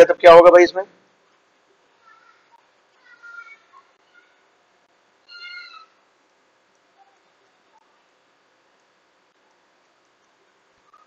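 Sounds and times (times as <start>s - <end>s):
faint room hiss: 0.0s - 11.0s
short high-pitched animal call: 5.2s - 6.0s.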